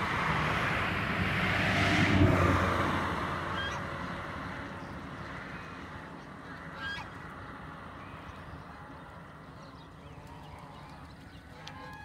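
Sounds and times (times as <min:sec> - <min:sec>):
goose honking: 0:03.5 - 0:03.8, 0:06.7 - 0:07.2, 0:10.2 - 0:12.0.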